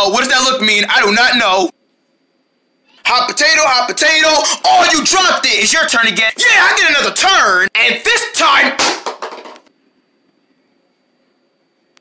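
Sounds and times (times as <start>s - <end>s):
faint high-pitched whine: 9.7s - 12.0s.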